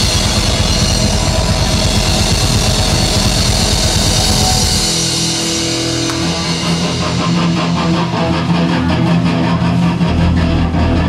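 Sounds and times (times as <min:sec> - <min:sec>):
drum kit fast beat: 0:00.0 - 0:10.2
hard rock band playing: 0:00.0 - 0:11.0.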